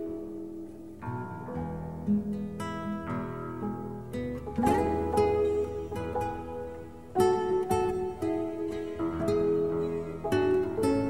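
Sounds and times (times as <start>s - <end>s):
acoustic guitar melody: 0.0s - 11.0s.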